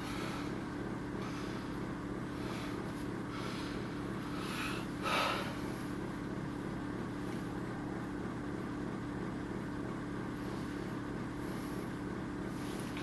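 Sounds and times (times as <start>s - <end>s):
electrical hum with hiss: 0.0s - 13.0s.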